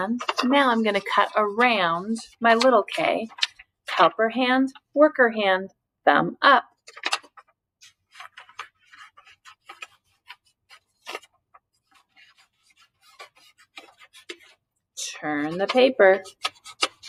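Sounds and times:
scissors snipping paper: 0.0 - 3.6, 6.9 - 14.6, 15.4 - 17.0
paper rustling: 0.0 - 4.1, 6.8 - 14.6, 15.4 - 17.0.

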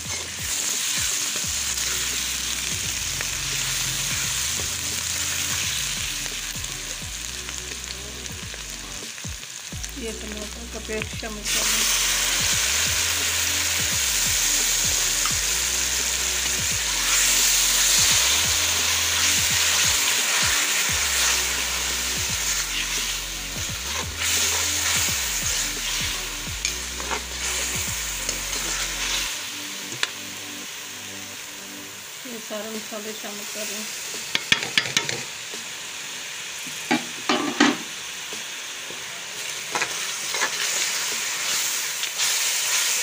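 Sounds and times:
tomato sizzling in hot oil: 0.0 - 43.0
metal spoon stirring in pan: 23.9 - 29.3, 39.7 - 43.0.

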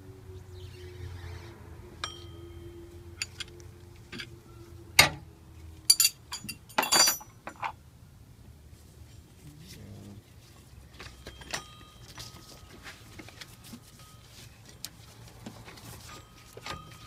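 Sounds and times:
wrench clinking against metal: 5.9 - 7.8, 11.1 - 12.6.

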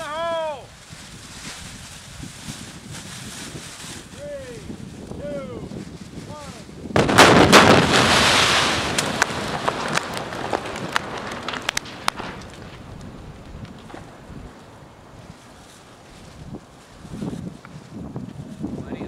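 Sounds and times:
fire roaring: 0.0 - 19.0
fireball blast: 6.8 - 16.7
sharp pops and cracks: 7.0 - 14.7.

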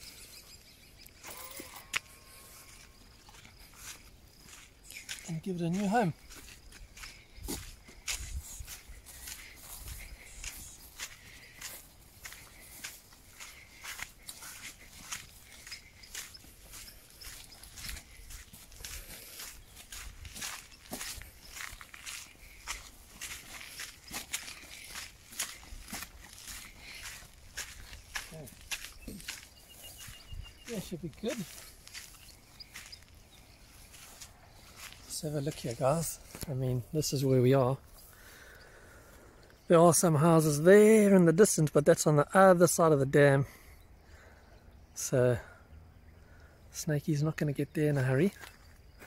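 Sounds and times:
footsteps on dirt track: 0.0 - 41.6, 46.8 - 49.0.

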